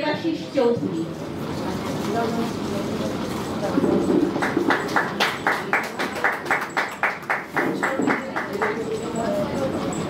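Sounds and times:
hands clapping in steady rhythm: 0:04.2 - 0:09.0.

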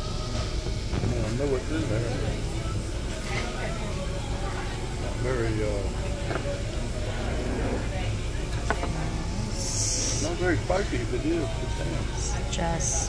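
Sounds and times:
murmur of diners' voices: 0:00.0 - 0:13.0.

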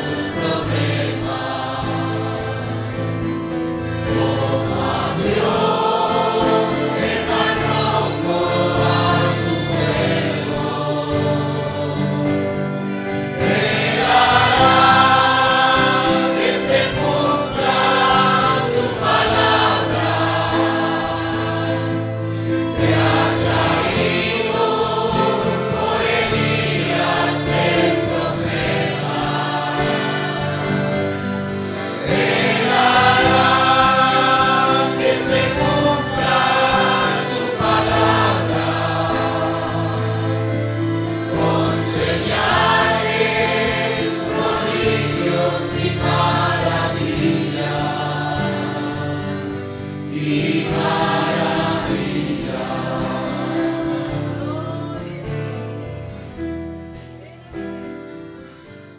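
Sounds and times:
congregation singing a hymn: 0:00.0 - 0:58.9.

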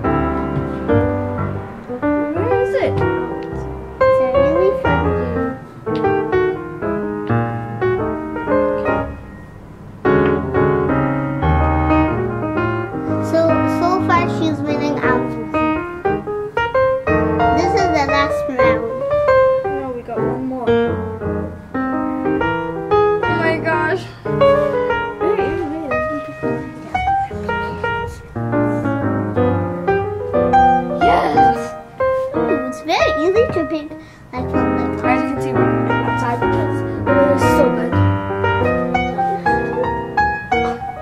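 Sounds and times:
piano music: 0:00.0 - 0:41.0
children's voices: 0:13.1 - 0:15.6, 0:17.5 - 0:19.1, 0:32.5 - 0:38.1.

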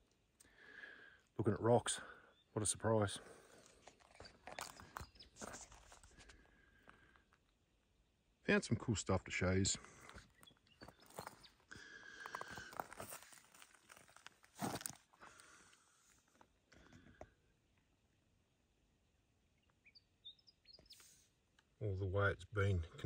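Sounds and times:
footsteps crunching on rock: 0:03.6 - 0:06.3, 0:09.9 - 0:15.5.

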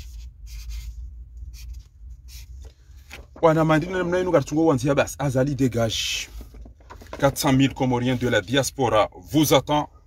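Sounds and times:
felt-tip marker writing on paper: 0:00.0 - 0:00.9.

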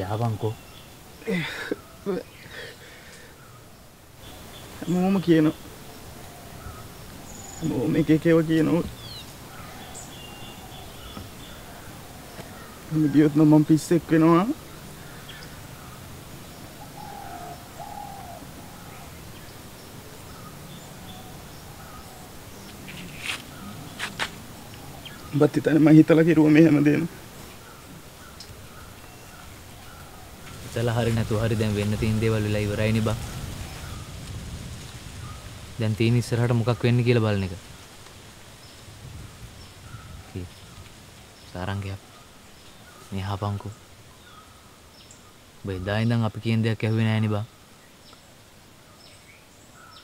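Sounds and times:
bird hooting calls: 0:00.0 - 0:31.0
faint bird chirps: 0:00.0 - 0:34.2, 0:35.1 - 0:37.6
low hiss of rural surroundings: 0:00.0 - 0:50.0.

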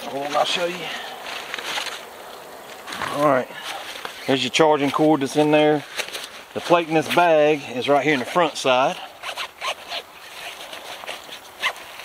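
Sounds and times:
backpack fabric rustling: 0:00.0 - 0:12.0.

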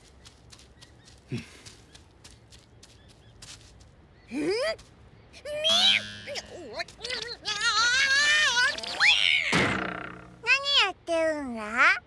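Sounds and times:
young voice speaking: 0:04.3 - 0:04.8, 0:05.4 - 0:09.1, 0:10.4 - 0:12.0
cartoon cat crying out: 0:05.6 - 0:06.4.

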